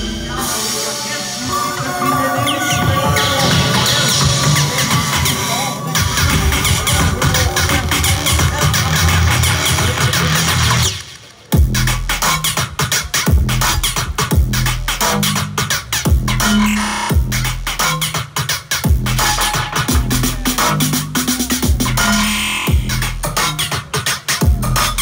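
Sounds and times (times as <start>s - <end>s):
electronic bass music: 0.0s - 11.0s, 11.6s - 25.0s.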